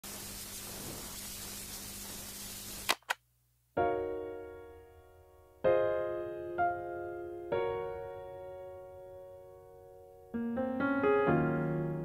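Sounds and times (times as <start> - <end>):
steady hiss: 0.0 - 3.2
sharp clicks: 2.8 - 3.2
electric piano chord: 3.8 - 12.0.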